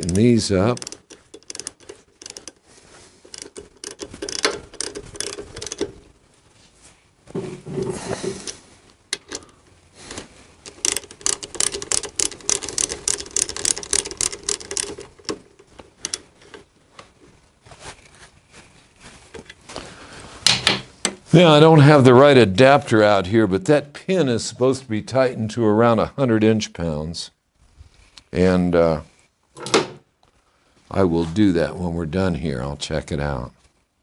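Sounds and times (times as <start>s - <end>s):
ratchet wrench clicking: 0.0s - 2.6s, 3.3s - 6.0s, 10.6s - 16.6s
tools clinking: 0.0s - 6.1s, 7.8s - 9.6s, 10.6s - 16.8s.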